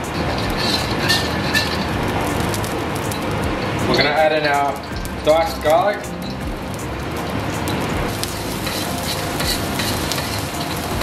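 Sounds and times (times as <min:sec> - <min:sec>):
gas burner rushing: 0:00.0 - 0:11.0.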